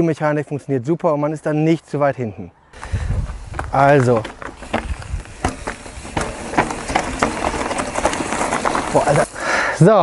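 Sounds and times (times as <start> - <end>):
tyres crunching over rock: 2.8 - 9.3
bike knocks and rattles: 3.4 - 9.3.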